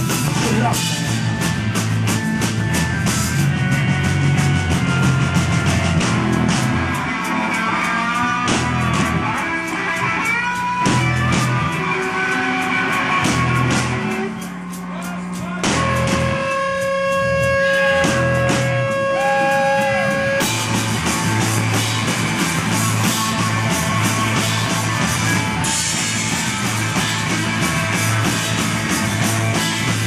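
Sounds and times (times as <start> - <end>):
bass: 0.0 - 30.0
drums: 0.0 - 30.0
electric guitar: 0.0 - 30.0
keyboards: 0.0 - 30.0.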